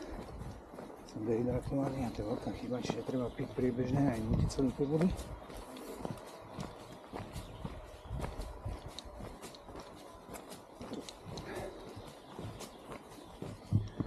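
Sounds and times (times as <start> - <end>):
footsteps on dirt trail: 0.0 - 14.0.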